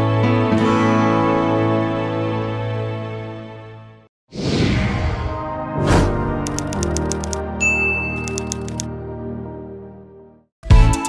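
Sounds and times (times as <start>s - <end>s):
typewriter key clicks: 6.5s - 7.4s, 8.2s - 8.9s
typewriter bell ding: 6.5s - 8.8s.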